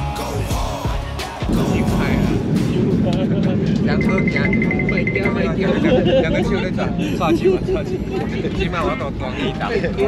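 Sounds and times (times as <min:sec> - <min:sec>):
voices: 0:00.4 - 0:10.0
airliner cabin rumble: 0:01.4 - 0:10.0.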